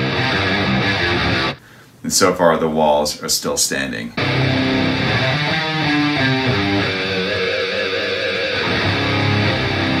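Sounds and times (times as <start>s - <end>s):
bass guitar: 0.0s - 1.7s, 4.2s - 10.0s
distorted electric guitar: 0.0s - 1.7s, 4.2s - 10.0s.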